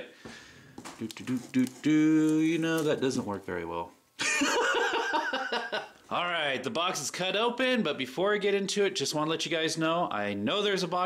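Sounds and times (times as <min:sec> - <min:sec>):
man laughing: 0:04.2 - 0:06.0.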